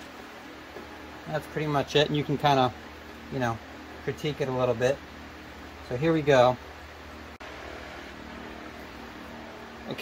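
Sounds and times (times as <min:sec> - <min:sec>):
room tone hum and hiss: 0:00.0 - 0:10.0.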